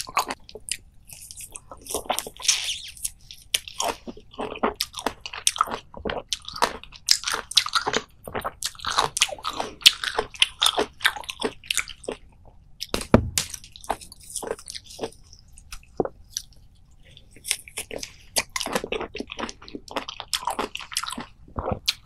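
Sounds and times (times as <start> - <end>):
wet chewing crunches: 0.0 - 22.0.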